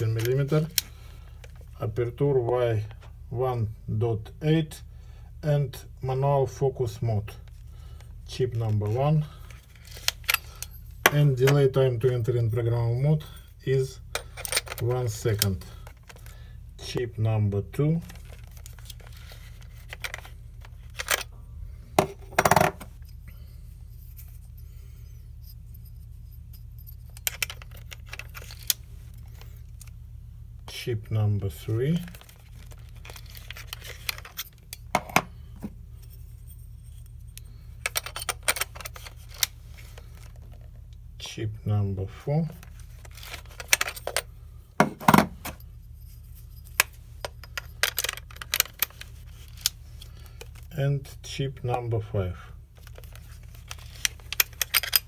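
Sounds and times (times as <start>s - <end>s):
low hum: 0.0s - 55.0s
small parts clicking and rattling: 9.4s - 11.7s, 14.1s - 16.4s, 18.0s - 21.3s, 25.4s - 30.0s, 32.0s - 35.2s, 36.9s - 40.8s, 42.6s - 44.3s, 45.4s - 50.7s, 52.8s - 55.0s.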